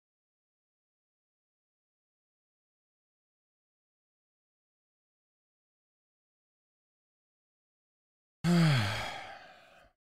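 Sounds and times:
man sighing: 8.4s - 9.9s.

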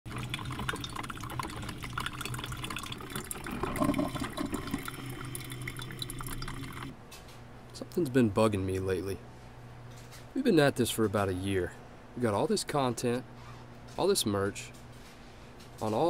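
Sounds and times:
coffee dripping into carafe: 0.1s - 6.9s
low steady hum: 0.1s - 16.0s.

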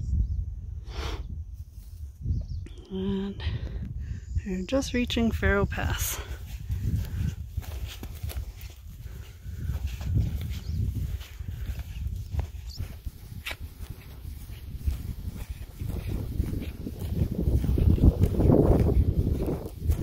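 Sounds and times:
wind rumble on microphone: 0.0s - 20.0s
footsteps on dirt trail: 5.9s - 20.0s.

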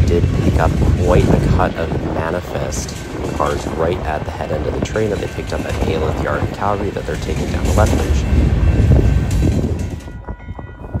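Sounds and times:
freight train rumbling past: 0.0s - 11.0s.

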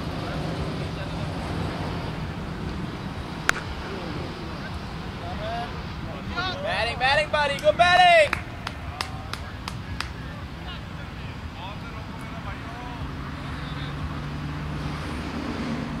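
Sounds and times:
faint distant voices: 0.0s - 15.0s
hand claps: 7.5s - 10.2s.

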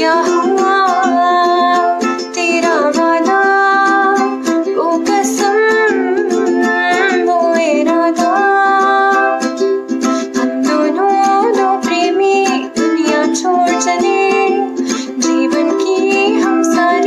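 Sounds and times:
ukulele strumming: 0.0s - 17.0s
woman singing: 0.0s - 17.0s.

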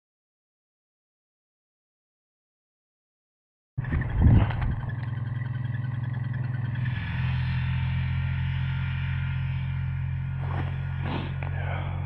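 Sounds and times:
low engine drone: 3.8s - 12.0s.

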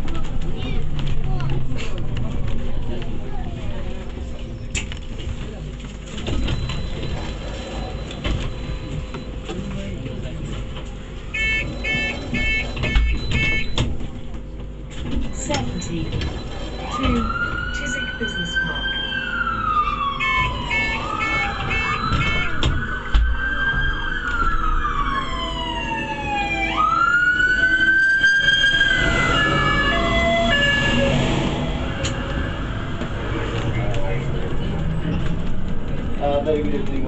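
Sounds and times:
bus engine rumble: 0.0s - 37.0s
emergency siren wailing: 11.3s - 13.7s, 15.4s - 34.5s.

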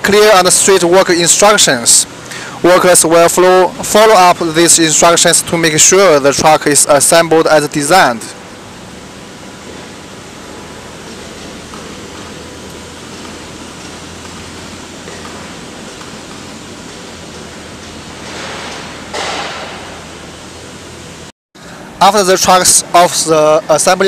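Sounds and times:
factory hall background noise: 0.0s - 24.0s.

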